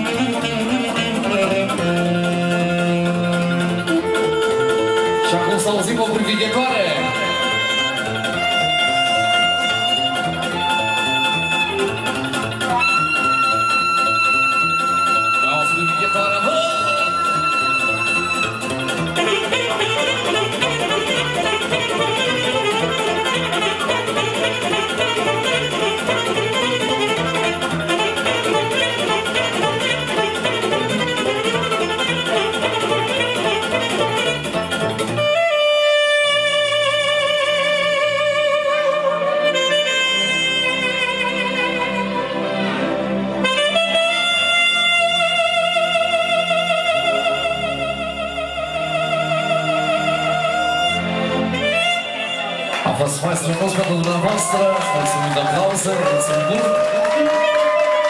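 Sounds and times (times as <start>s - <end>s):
alto saxophone playing: 0.0s - 52.9s, 54.5s - 58.0s
keyboard and rhythm backing: 0.0s - 58.0s.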